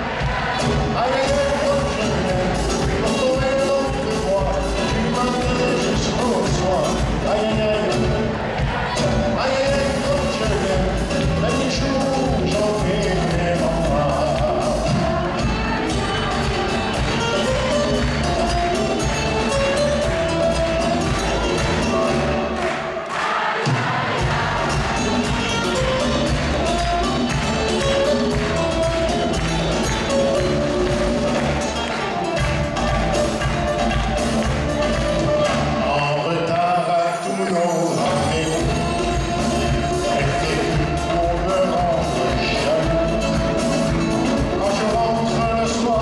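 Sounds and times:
bass: 0.0s - 22.7s, 24.2s - 36.7s, 38.0s - 46.0s
acoustic guitars: 0.0s - 23.0s, 23.9s - 46.0s
congas: 0.0s - 36.1s, 37.9s - 46.0s
drum kit: 0.0s - 36.1s, 38.0s - 46.0s.

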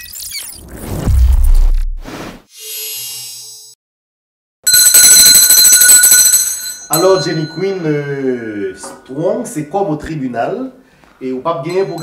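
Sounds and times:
electric alarm bell ringing: 4.6s - 8.9s.

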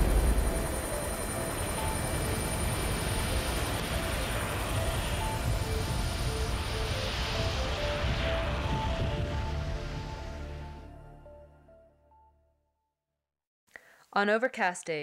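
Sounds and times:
explosion boom: 0.0s - 2.3s
helicopter engine and rotor: 0.0s - 10.6s
soft background music: 0.0s - 12.5s.

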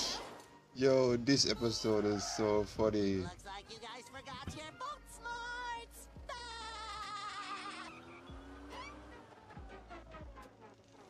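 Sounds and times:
wavering high-pitched cry: 6.6s - 9.0s.

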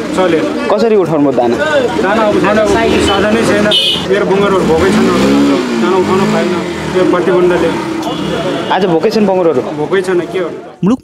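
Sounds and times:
vehicle engine revving: 0.0s - 10.7s
people's voices: 0.0s - 11.0s.

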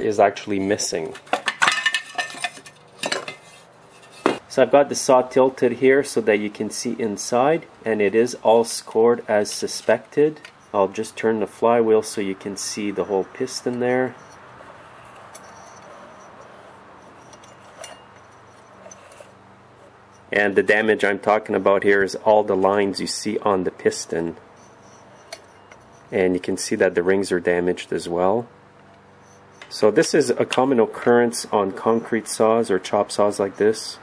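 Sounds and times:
low steady hum: 0.0s - 34.0s
metal clinking and scraping: 1.1s - 4.4s, 13.7s - 20.9s.

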